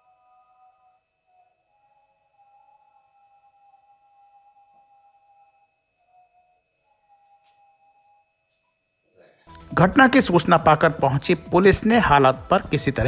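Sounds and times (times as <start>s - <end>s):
faint music of held notes: 0.0s - 13.0s
thin high whine: 0.0s - 13.0s.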